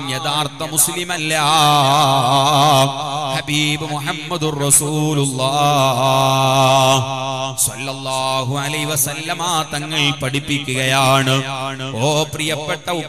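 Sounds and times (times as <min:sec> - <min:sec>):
man chanting into microphone: 0:00.0 - 0:13.0.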